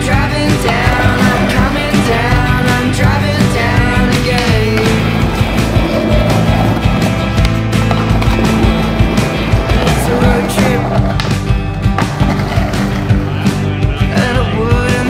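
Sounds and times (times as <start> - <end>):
rock music: 0.0 - 15.0
skateboard wheels rolling on concrete: 0.0 - 15.0.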